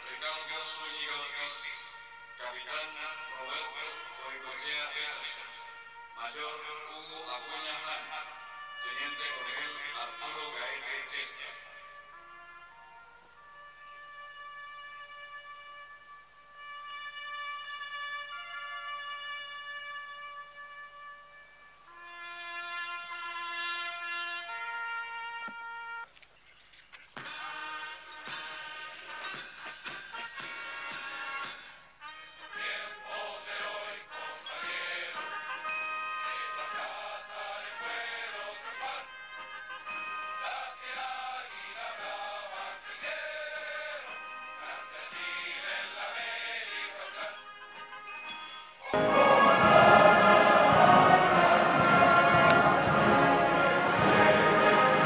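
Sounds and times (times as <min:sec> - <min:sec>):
solo brass horn call: 0:00.1 - 0:06.7, 0:07.5 - 0:26.1, 0:27.5 - 0:33.0, 0:48.9 - 0:55.0
ensemble music: 0:27.3 - 0:55.0.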